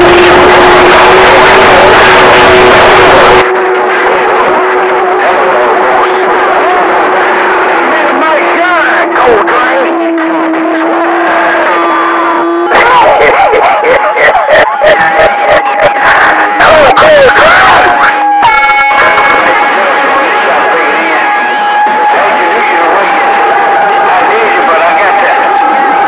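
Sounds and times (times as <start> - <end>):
radio static hiss: 0.0 - 11.8
garbled radio voices: 0.0 - 26.0
steady radio whistle: 0.0 - 26.0.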